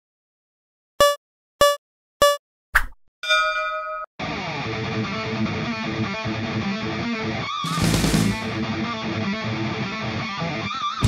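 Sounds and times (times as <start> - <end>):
short countdown beeps: 1.0 - 2.4
rock music with electric guitar: 4.2 - 11.0.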